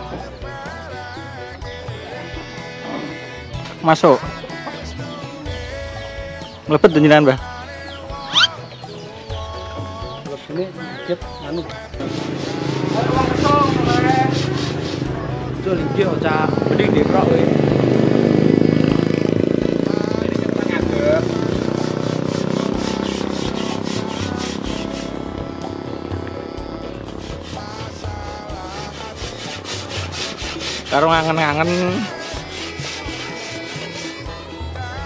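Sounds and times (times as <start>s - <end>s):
music with singing voice: 0.0s - 35.0s
sandpaper rubbing wood: 12.0s - 15.4s, 21.7s - 25.4s, 27.2s - 34.6s.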